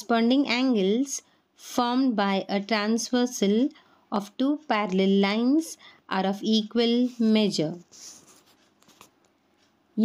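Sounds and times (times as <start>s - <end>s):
faint scratching and rustling: 6.8s - 9.8s.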